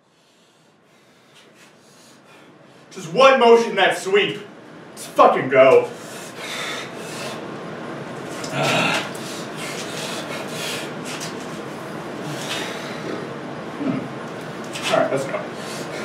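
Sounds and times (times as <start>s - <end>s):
man breathing hard: 0.0s - 2.9s, 6.0s - 7.5s, 8.5s - 13.3s, 15.5s - 16.0s
man grunting: 8.4s - 9.1s.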